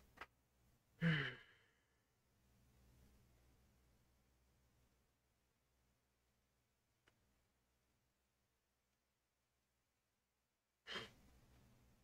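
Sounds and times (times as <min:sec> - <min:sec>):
man sighing: 0:01.0 - 0:01.8.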